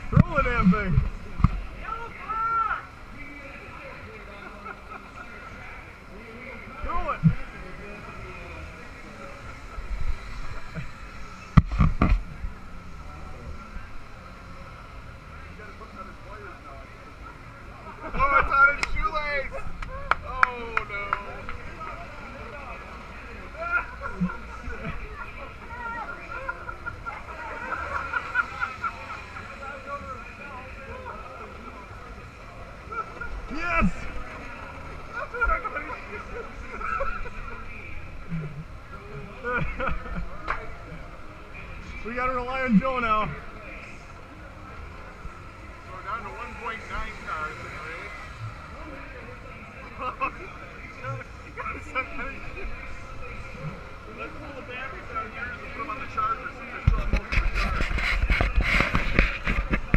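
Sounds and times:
crowd noise: 0:00.0 - 0:59.9
nearby voices: 0:00.0 - 0:59.9.

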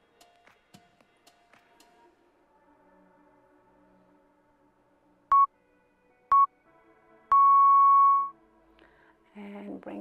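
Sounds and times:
faint background music: 0:00.0 - 0:10.0
timer beeping: 0:07.3 - 0:08.3.

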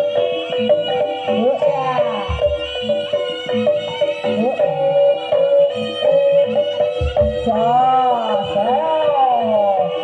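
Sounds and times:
held sliding melody line: 0:00.0 - 0:10.0
low drum beats: 0:01.6 - 0:04.2, 0:06.9 - 0:08.8.

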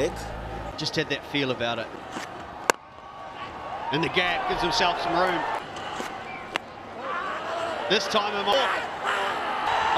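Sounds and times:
faint crowd noise: 0:00.0 - 0:09.9.

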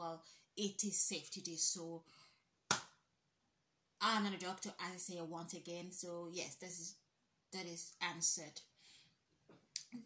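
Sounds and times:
sharp hand clap: 0:02.7 - 0:03.0.

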